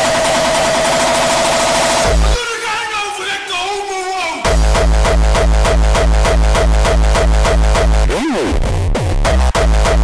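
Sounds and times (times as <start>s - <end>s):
hardcore electronic music: 0.0s - 10.0s
distorted kick drum roll: 1.9s - 2.4s, 4.5s - 10.0s.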